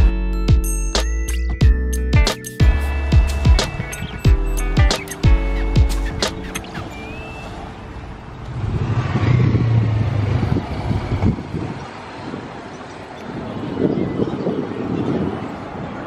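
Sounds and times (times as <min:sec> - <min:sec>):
vehicle passing with engine hum: 0:02.7 - 0:16.0.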